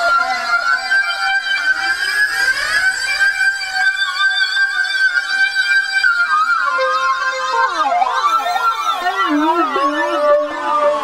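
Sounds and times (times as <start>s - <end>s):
synthesizer gliding high notes: 0.0s - 7.0s, 8.0s - 11.0s.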